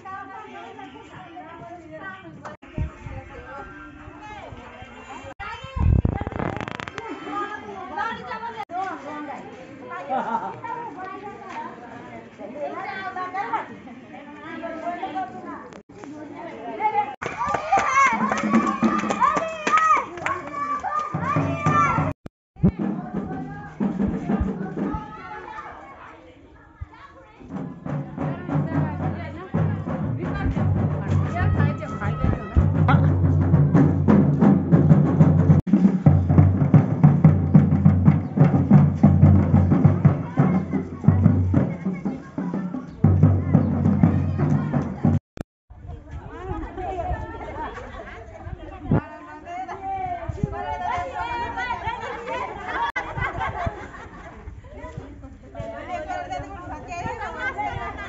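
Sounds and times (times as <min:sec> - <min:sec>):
people chatting: 0:00.0 - 0:22.0, 0:22.6 - 0:33.3, 0:39.8 - 0:45.2, 0:45.8 - 0:58.0
children shouting: 0:02.6 - 0:08.7, 0:16.8 - 0:22.2, 0:22.8 - 0:28.4, 0:31.0 - 0:34.0, 0:39.7 - 0:45.2, 0:50.5 - 0:54.0.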